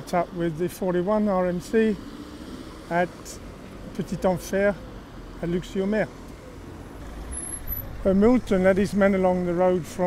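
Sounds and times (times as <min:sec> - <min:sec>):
road vehicle rumble: 0:00.0 - 0:10.0.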